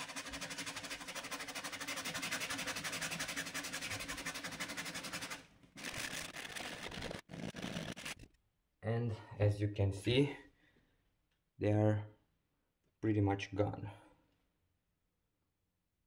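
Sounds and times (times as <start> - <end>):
sandpaper rubbing on wood: 0.0 - 8.2.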